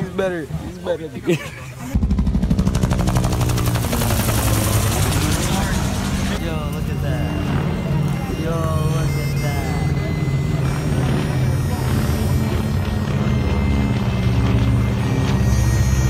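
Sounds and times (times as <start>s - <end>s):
propeller airplane engine drone: 1.8s - 16.0s.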